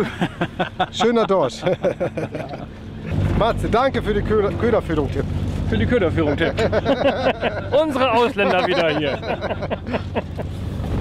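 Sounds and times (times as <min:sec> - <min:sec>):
people laughing: 0:00.0 - 0:03.1, 0:06.2 - 0:10.5
boat engine droning: 0:00.0 - 0:11.0.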